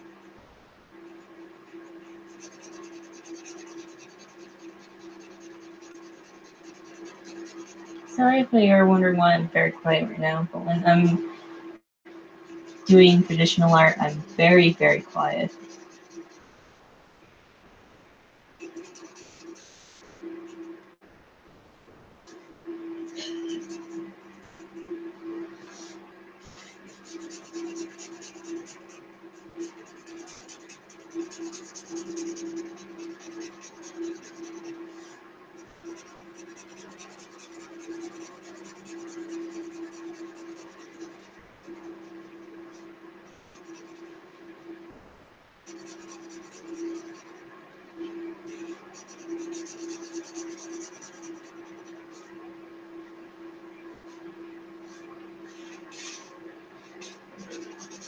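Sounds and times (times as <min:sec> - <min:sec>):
marker scratching on paper: 0:01.1 - 0:08.8, 0:12.5 - 0:16.4, 0:18.6 - 0:20.7, 0:23.1 - 0:25.0, 0:25.6 - 0:44.2, 0:45.7 - 0:52.4, 0:54.0 - 0:58.0.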